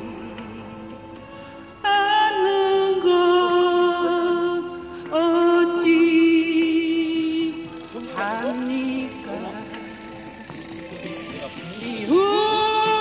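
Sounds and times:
backing track music: 0.0s - 13.0s
woman singing karaoke: 1.8s - 10.2s, 11.7s - 13.0s.

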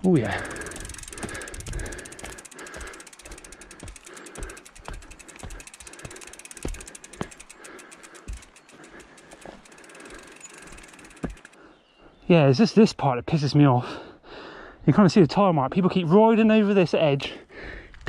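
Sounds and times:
bike freehub ratcheting clicks: 0.0s - 11.6s
bike thudding over bumps: 0.0s - 11.6s.

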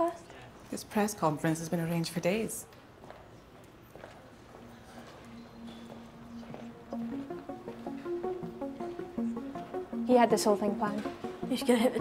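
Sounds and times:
footsteps on hard floor: 5.0s - 9.8s, 10.8s - 11.6s.

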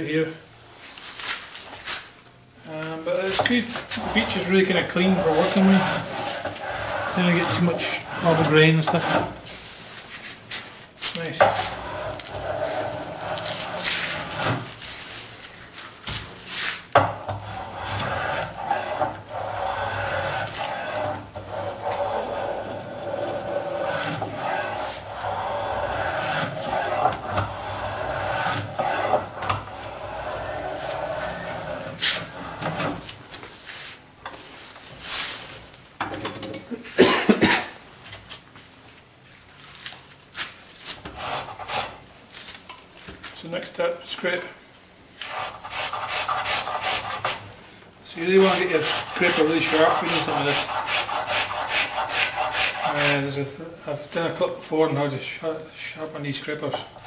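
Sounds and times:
hand plane shaving wood: 3.4s - 9.3s, 11.4s - 14.7s, 17.3s - 33.1s, 45.2s - 47.4s, 48.2s - 53.3s.

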